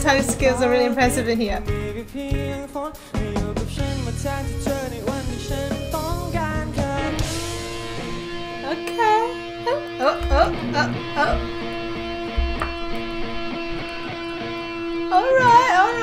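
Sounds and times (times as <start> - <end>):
electric guitar solo: 7.5 - 16.0
low thumps: 10.2 - 15.1.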